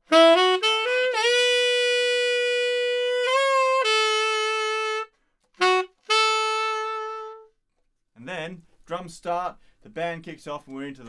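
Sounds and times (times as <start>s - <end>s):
tenor saxophone playing: 0.0s - 7.6s.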